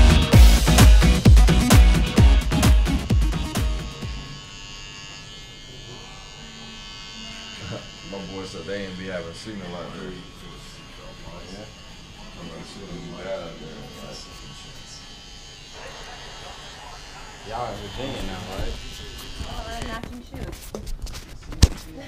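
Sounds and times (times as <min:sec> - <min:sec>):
electric hair clipper buzzing: 0:00.0 - 0:20.1.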